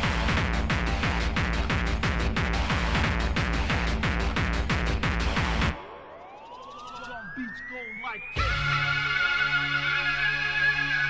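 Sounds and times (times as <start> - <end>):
falling electronic blips: 5.8 - 8.4
synth tone sweeping upward: 5.8 - 11.0.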